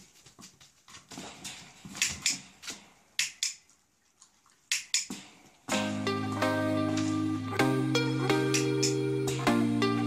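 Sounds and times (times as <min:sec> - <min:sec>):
sharp irregular clicks and taps: 0:02.0 - 0:03.7, 0:04.7 - 0:05.3.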